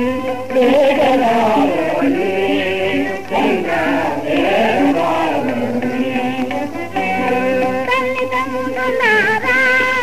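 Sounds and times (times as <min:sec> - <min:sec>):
held instrumental notes: 0:00.0 - 0:10.0.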